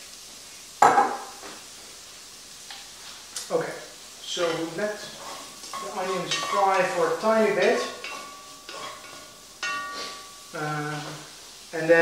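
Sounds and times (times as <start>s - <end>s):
onions sizzling in oil: 0.0s - 12.0s.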